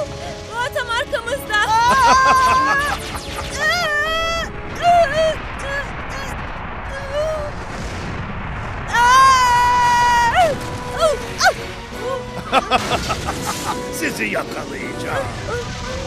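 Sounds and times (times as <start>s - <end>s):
background music: 0.0s - 6.4s, 9.2s - 16.0s
steady rumbling sound effect: 1.1s - 16.0s
cartoon characters crying out: 1.7s - 4.4s.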